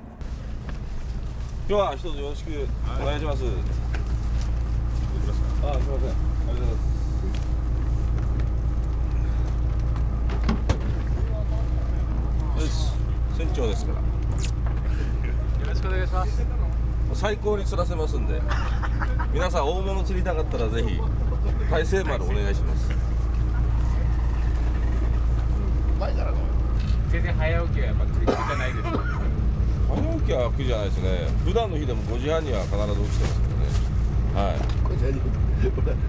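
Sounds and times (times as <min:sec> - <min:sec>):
boat engine idling: 0:00.0 - 0:36.0.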